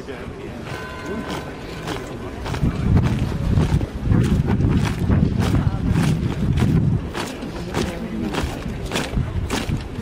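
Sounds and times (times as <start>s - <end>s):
marching footsteps on cobblestones: 0.7s - 10.0s
wind buffeting microphone: 1.2s - 10.0s.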